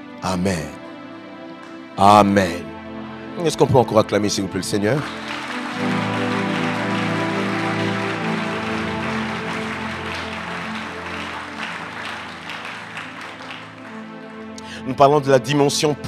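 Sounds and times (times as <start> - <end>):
music of sustained chords: 0.0 - 16.0
congregation applauding: 4.4 - 15.6.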